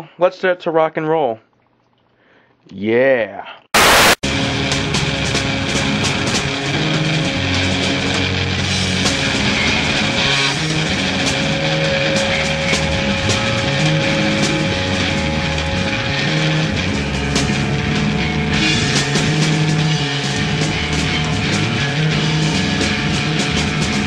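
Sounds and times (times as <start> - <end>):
distorted electric guitar feedback: 3.8 - 24.0
crashing cymbals and drums: 8.5 - 17.8.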